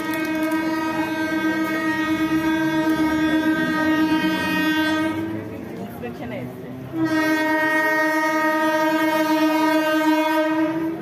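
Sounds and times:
train horn long blast: 0.0s - 5.8s, 6.8s - 11.0s.

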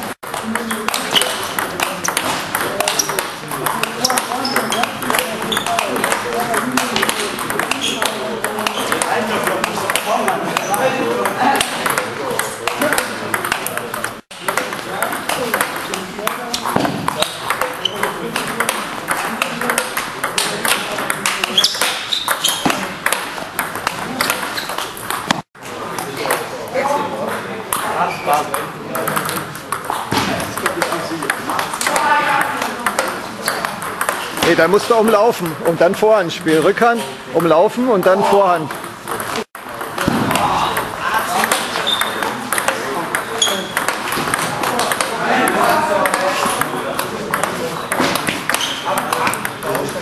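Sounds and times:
table tennis ball clicks: 30.6s - 34.7s, 38.7s - 50.0s.

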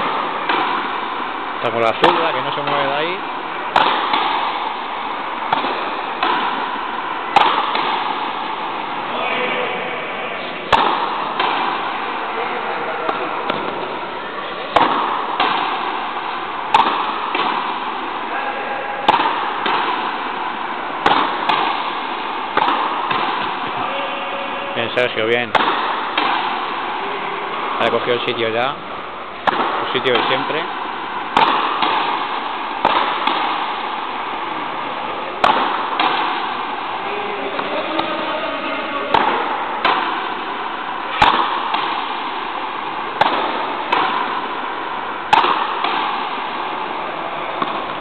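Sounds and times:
ball struck by rackets: 0.0s - 9.2s, 10.4s - 48.0s
ball hitting walls: 0.0s - 48.0s
hubbub of voices: 11.9s - 14.8s.

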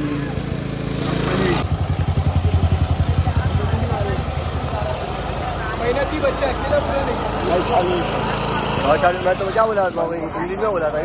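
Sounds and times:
portable generator running: 0.0s - 11.0s.

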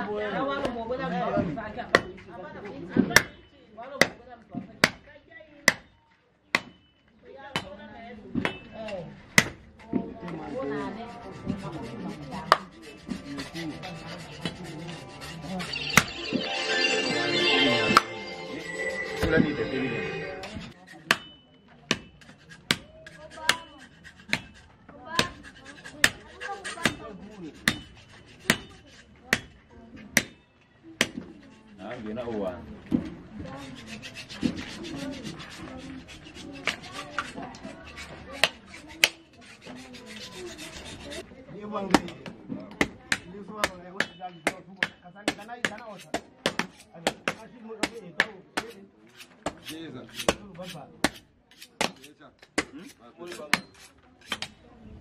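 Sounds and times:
machete chopping meat and bone: 24.2s - 27.0s, 27.6s - 27.9s, 28.5s - 28.7s, 42.8s - 54.5s.

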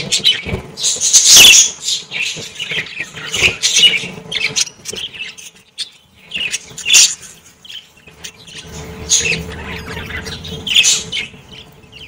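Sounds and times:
budgerigars chirping and squawking: 0.0s - 12.0s.

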